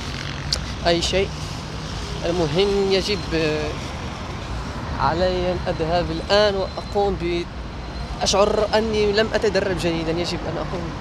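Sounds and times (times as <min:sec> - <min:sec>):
man speaking: 0:00.6 - 0:01.4, 0:02.0 - 0:03.9, 0:04.9 - 0:07.5, 0:08.1 - 0:11.0.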